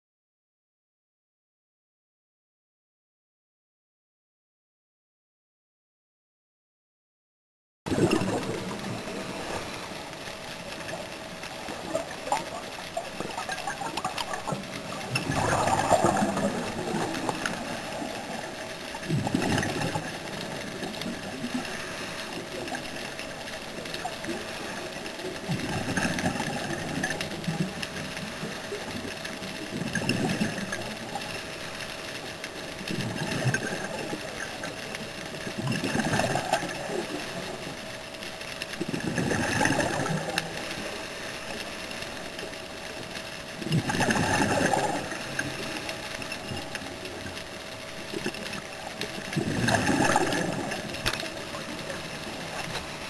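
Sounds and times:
underwater regulator bubbles: 0:07.9 - 0:31.4, 0:32.7 - 0:37.8, 0:38.8 - 0:41.6, 0:43.6 - 0:53.0
steady hum: 0:07.9 - 0:53.0.

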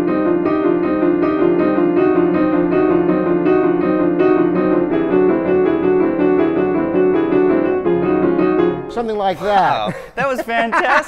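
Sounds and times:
grand piano fast exercise: 0:00.0 - 0:10.2.

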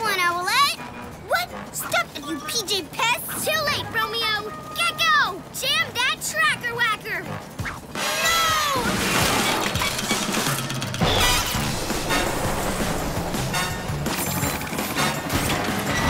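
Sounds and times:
cartoon chase music: 0:00.0 - 0:16.0
crashes and rumble: 0:11.0 - 0:16.0.

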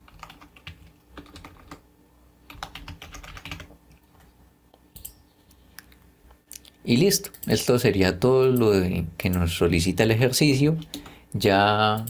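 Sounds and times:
typing on computer keyboard: 0:00.0 - 0:01.8, 0:02.5 - 0:03.8.

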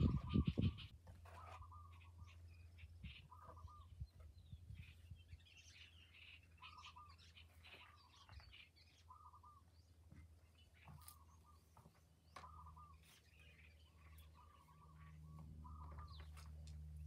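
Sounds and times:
birds chirping: 0:00.0 - 0:17.0
low steady hum: 0:00.0 - 0:17.0.

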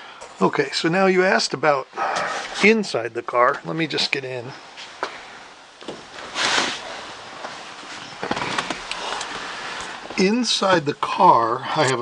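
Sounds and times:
person climbing into car seat: 0:08.2 - 0:09.0.

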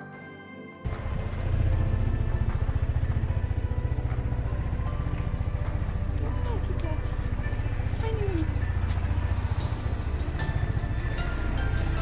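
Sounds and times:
motor scooter engine running: 0:00.9 - 0:12.0.

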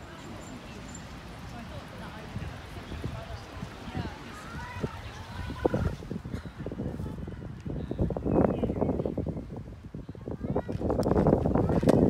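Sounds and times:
microphone handling noise: 0:10.6 - 0:12.0.

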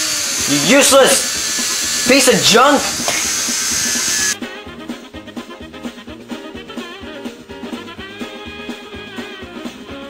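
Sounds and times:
robot arm motors whirring: 0:00.0 - 0:04.4
music: 0:00.0 - 0:10.0.

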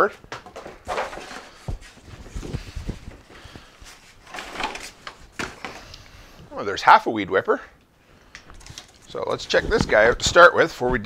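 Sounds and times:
cardboard rustling and scraping: 0:00.4 - 0:05.9.

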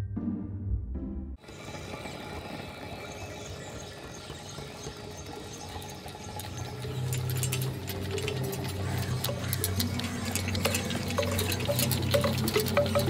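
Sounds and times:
crackling clicks: 0:03.5 - 0:13.0.

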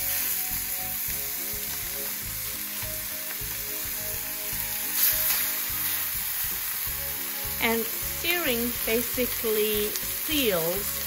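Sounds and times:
steak sizzling in skillet: 0:00.0 - 0:11.0.

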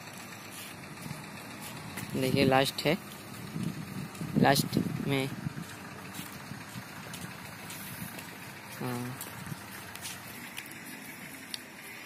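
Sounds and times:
outdoor background noise: 0:00.0 - 0:12.0
person's voice: 0:02.1 - 0:03.0, 0:04.3 - 0:05.4, 0:08.8 - 0:09.3.

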